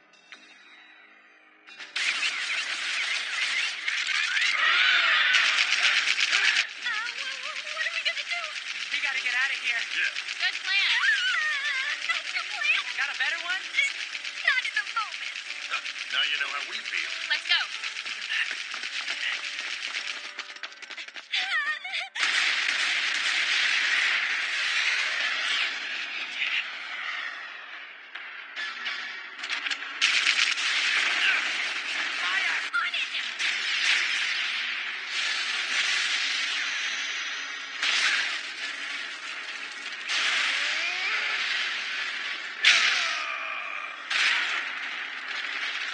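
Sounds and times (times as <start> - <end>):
battle sound effects: 1.9 - 20.2
rapid crackling rattle: 2.0 - 21.4, 29.4 - 42.8
voices crying out: 3.7 - 8.7
loud burst of noise: 33.3 - 43.2.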